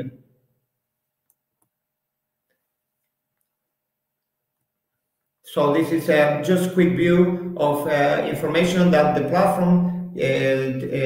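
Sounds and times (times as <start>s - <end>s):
man speaking: 5.5s - 11.0s.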